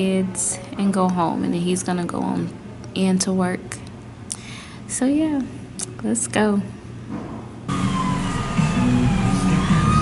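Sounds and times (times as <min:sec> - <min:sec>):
emergency vehicle siren wailing: 0:07.7 - 0:10.0.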